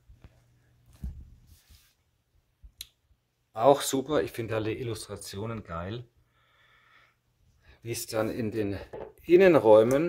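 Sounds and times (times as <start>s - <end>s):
hand brushing book cover: 1.0s - 2.1s.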